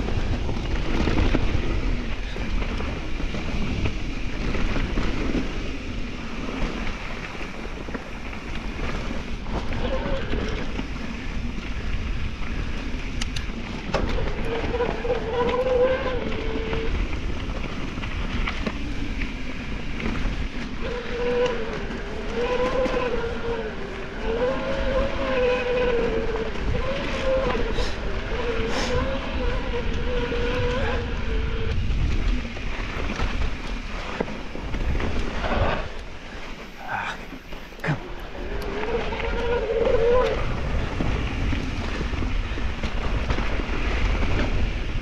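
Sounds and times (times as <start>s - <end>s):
wind on microphone: 0.0s - 45.0s.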